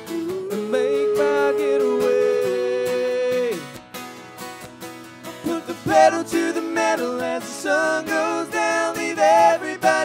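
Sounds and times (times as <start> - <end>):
voices singing in harmony: 0.0 - 3.6, 5.4 - 10.0
strummed acoustic guitar: 0.0 - 10.0.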